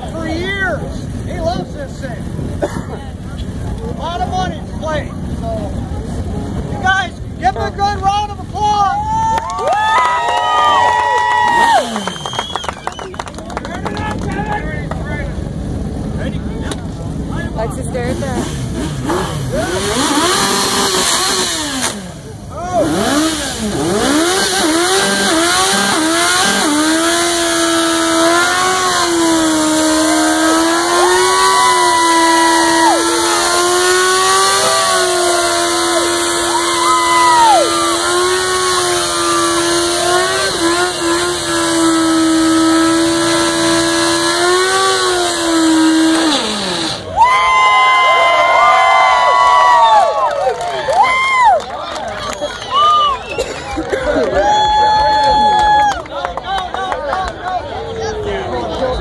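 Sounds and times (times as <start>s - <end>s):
motorcycle engine revving high: 9.8s - 13.0s, 14.0s - 50.1s.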